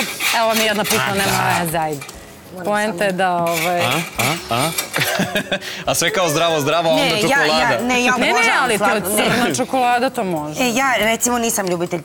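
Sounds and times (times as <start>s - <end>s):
people's voices: 0.3s - 12.0s.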